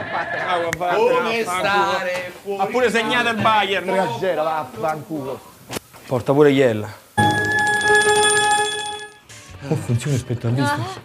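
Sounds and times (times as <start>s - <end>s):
bell-like ringing trill: 7.2s - 9.2s.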